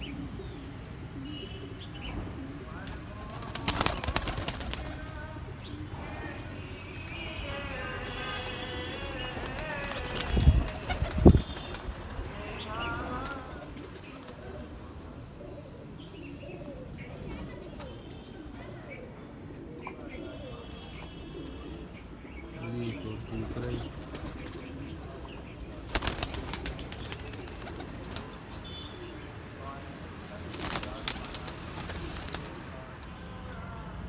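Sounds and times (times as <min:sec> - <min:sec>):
pigeons cooing: 0:00.0 - 0:06.5, 0:09.5 - 0:29.3
pigeon wings flapping: 0:02.8 - 0:05.2, 0:08.5 - 0:12.4, 0:25.8 - 0:28.5, 0:30.4 - 0:33.2.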